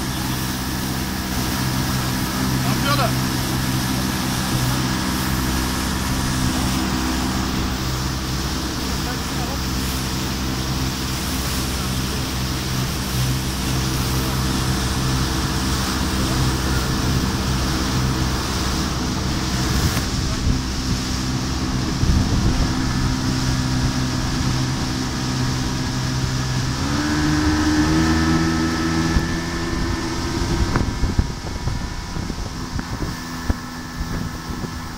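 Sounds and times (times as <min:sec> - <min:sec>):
outboard motor running: 0:00.0 - 0:34.9
water noise: 0:00.0 - 0:34.9
wind: 0:00.0 - 0:34.9.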